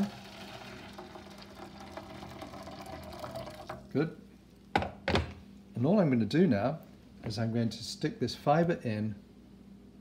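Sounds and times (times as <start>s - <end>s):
water pouring into metal pan: 0.0s - 3.8s.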